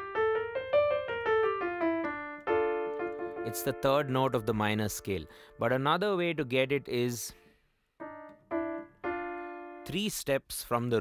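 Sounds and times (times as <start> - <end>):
digital piano notes: 0.0 - 10.4.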